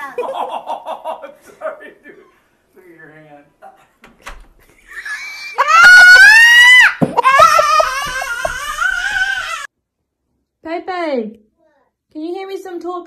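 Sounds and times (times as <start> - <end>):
child screaming: 5.1 - 9.7.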